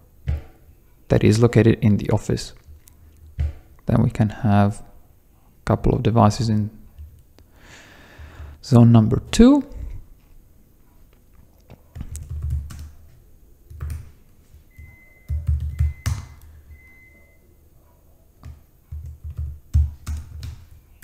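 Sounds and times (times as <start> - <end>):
typing on computer keyboard: 12.0 - 13.0, 15.3 - 16.5, 18.4 - 20.8.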